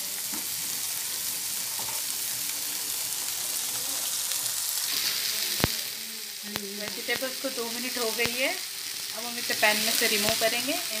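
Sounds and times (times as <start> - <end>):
paste sizzling in hot oil: 0.0 - 11.0.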